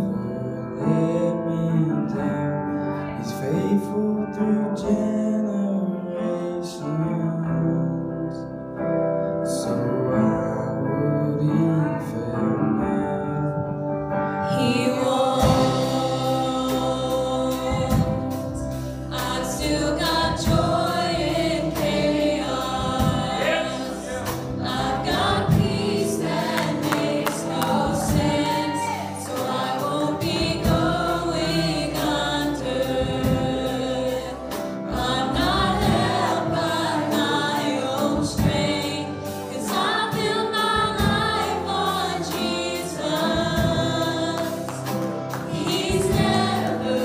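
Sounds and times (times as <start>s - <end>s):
instrumental accompaniment: 13.4s - 47.0s
choir singing gospel song: 14.3s - 47.0s.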